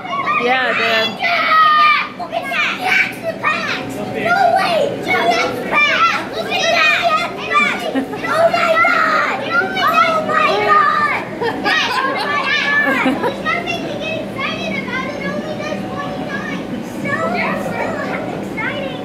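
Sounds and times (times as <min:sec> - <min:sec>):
children talking and calling out: 0:00.0 - 0:19.0.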